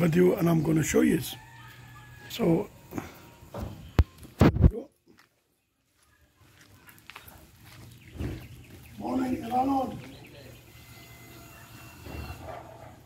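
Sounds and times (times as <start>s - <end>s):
flip-flop footsteps on gravel: 3.8s - 10.3s.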